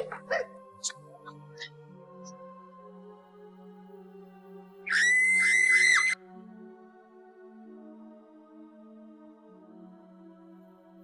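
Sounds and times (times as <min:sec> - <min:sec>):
soft background music: 0:00.0 - 0:11.0
shrill high-pitched scream: 0:04.9 - 0:06.2.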